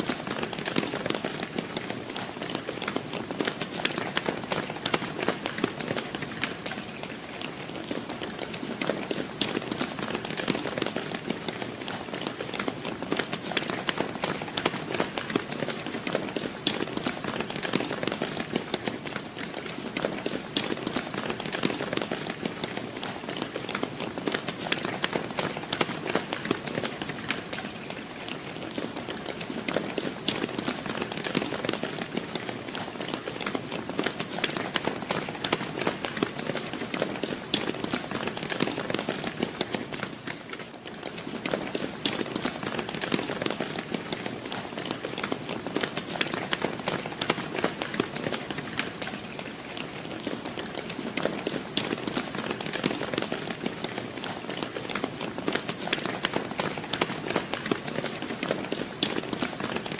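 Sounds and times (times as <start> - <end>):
crowd running footsteps: 0.0 - 59.9.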